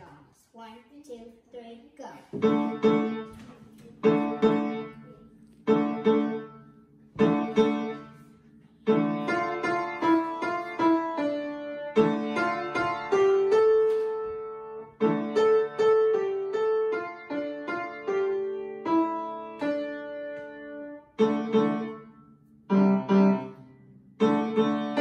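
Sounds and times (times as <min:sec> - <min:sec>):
child playing upright piano: 0:02.3 - 0:25.0.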